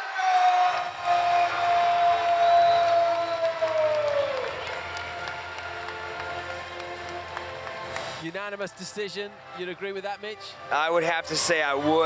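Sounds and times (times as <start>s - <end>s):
crowd cheering and applause: 0.0s - 9.2s.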